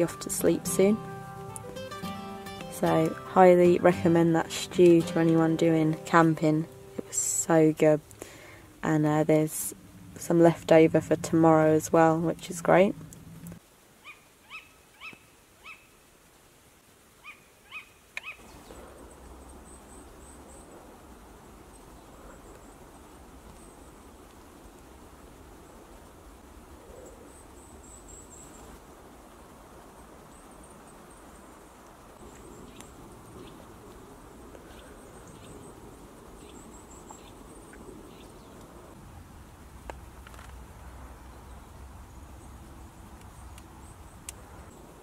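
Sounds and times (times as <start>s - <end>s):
owl calling: 14.0s - 15.9s, 17.2s - 18.8s.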